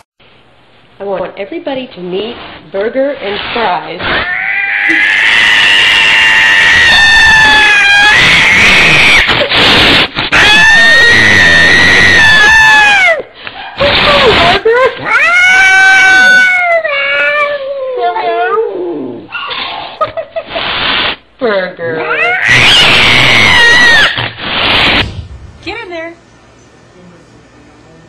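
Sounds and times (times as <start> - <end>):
cat yowling: 4.0 - 19.5, 22.0 - 24.9.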